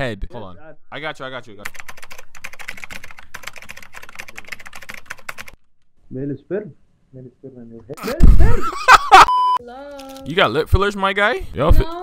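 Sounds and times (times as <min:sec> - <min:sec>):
fast typing on keyboard: 0:01.6 - 0:05.6.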